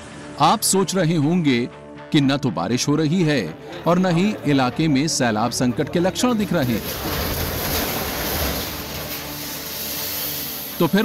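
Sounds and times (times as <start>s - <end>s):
house collapsing rumble: 6.0s - 11.0s.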